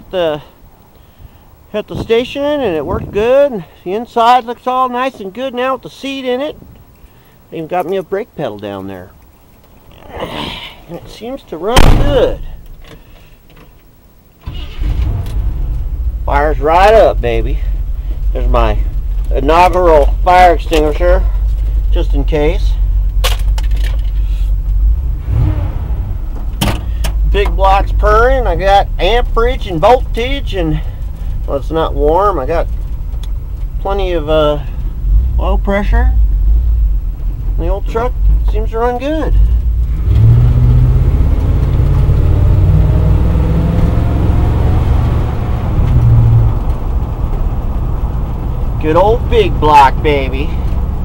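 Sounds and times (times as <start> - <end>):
engine idling: 14.2 - 39.9.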